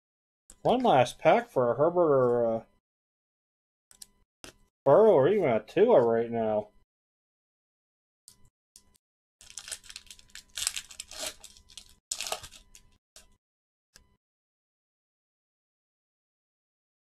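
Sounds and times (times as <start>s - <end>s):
wrapper rustling: 9.4s - 13.0s
wrapper tearing and crinkling: 9.4s - 13.0s.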